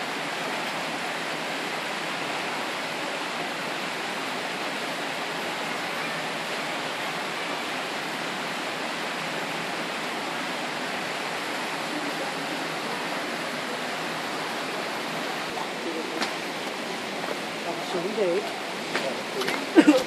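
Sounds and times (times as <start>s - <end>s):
flowing water rushing: 0.0s - 20.0s.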